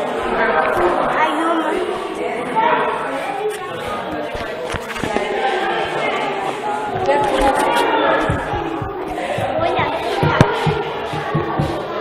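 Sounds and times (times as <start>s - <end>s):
voices echoing in a hall: 0.0s - 12.0s.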